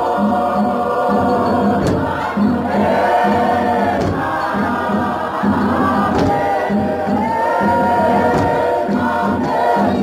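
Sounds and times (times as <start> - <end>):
choir singing gospel: 0.0 - 10.0
steady beat: 0.0 - 10.0.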